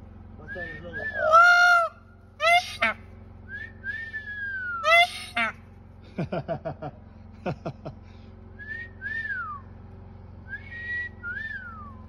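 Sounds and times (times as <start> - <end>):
person whistling: 8.6 - 9.6.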